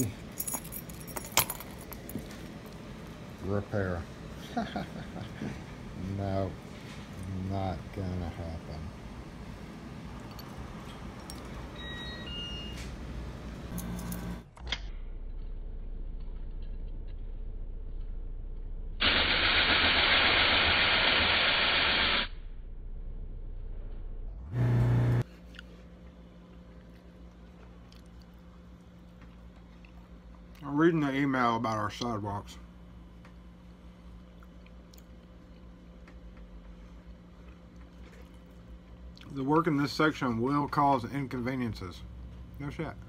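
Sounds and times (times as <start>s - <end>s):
machine motor hum: 24.4s - 25.2s
short loud buzz: 24.5s - 25.2s.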